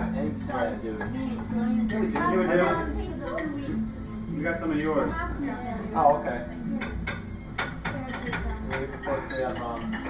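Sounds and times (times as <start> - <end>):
quiet table chatter: 0.0 - 10.0
utensils clinking on plates: 1.0 - 3.8, 4.6 - 5.2, 6.7 - 10.0.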